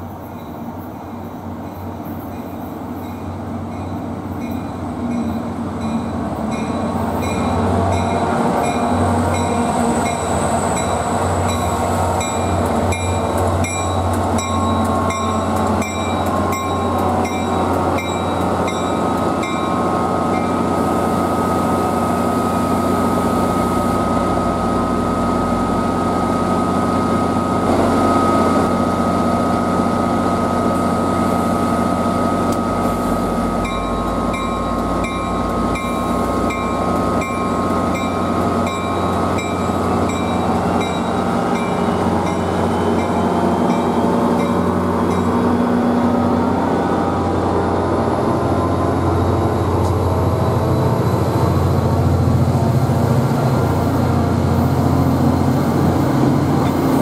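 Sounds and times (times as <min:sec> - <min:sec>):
diesel locomotive engine drone: 0:00.0 - 0:57.0
locomotive bell ringing: 0:02.4 - 0:20.7, 0:33.4 - 0:45.6.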